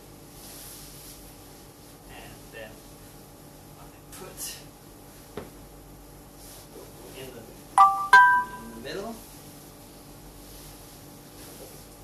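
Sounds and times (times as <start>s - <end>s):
two-note electronic chime: 7.8s - 8.8s.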